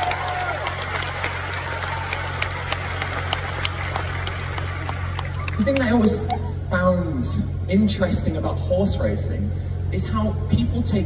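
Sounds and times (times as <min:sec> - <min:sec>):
audience applauding: 0:00.0 - 0:06.4
steady low hum: 0:00.5 - 0:11.0.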